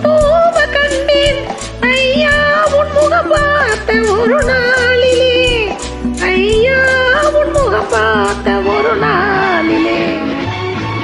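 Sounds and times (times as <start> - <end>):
woman singing: 0.0 - 10.5
karaoke backing track: 0.0 - 11.0.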